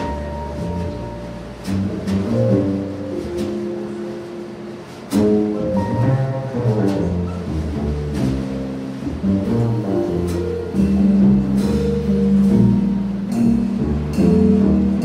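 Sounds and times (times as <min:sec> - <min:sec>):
drum kit with cymbal strokes: 0:00.0 - 0:15.0
jazz guitar: 0:00.0 - 0:15.0
upright bass walking: 0:00.0 - 0:15.0.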